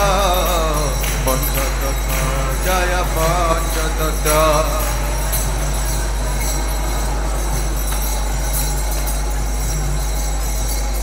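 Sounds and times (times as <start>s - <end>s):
crowd clapping along: 0.0s - 11.0s
hand cymbals and bells ringing: 0.0s - 11.0s.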